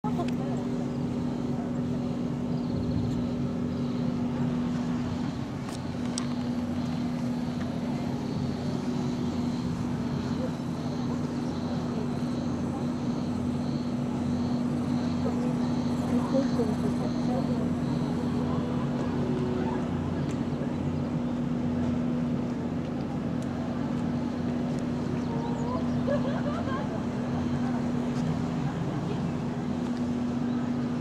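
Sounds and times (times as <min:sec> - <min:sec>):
distant voices: 0:00.0 - 0:31.0
steady machine hum: 0:00.0 - 0:31.0
faint pulsing high tone: 0:00.1 - 0:21.3.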